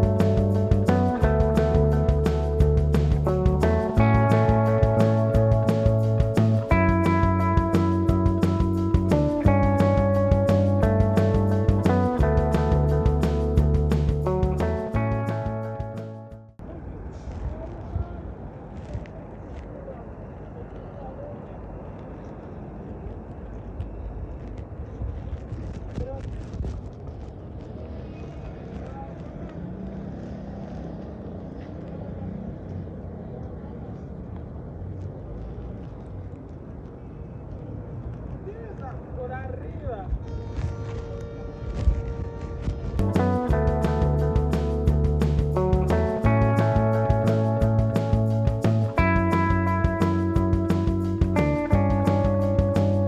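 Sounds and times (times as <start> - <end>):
guitar music: 0.0 - 16.6, 43.0 - 53.0
city traffic hum: 0.0 - 53.0.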